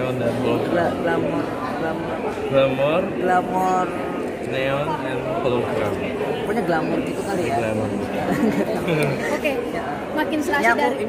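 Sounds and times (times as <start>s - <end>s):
chatter of background voices: 0.0s - 11.0s
people talking in an interview: 0.0s - 11.0s.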